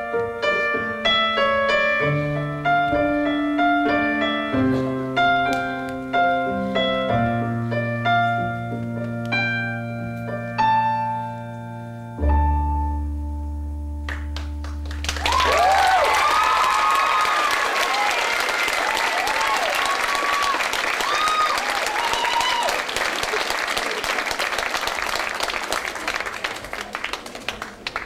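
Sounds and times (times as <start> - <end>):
low piano chord ringing: 0.0 - 14.1
audience applause with cheers: 14.4 - 28.0.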